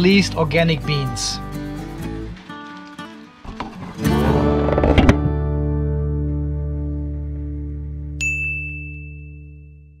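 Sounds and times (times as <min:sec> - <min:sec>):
bright ding: 0:08.2 - 0:09.8.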